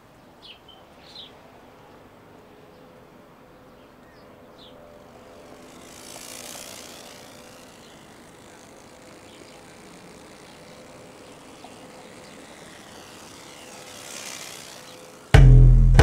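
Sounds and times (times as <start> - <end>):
vehicle passing: 1.2 - 15.5
faint engine drone: 1.2 - 16.0.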